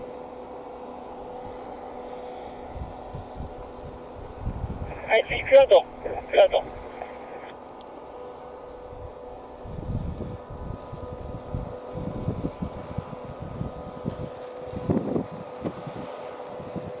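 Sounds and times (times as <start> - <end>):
faint steady hum: 0.0 - 14.8
wind buffeting microphone: 2.6 - 7.4, 8.9 - 17.0.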